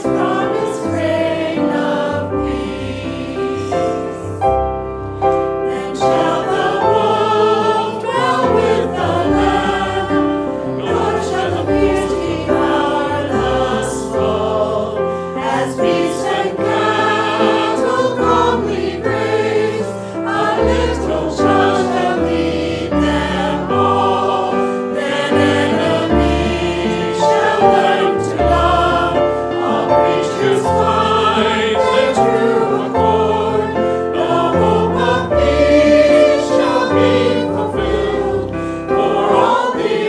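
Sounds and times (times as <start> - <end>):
congregation singing a hymn: 0.0 - 40.0
digital piano: 0.0 - 40.0.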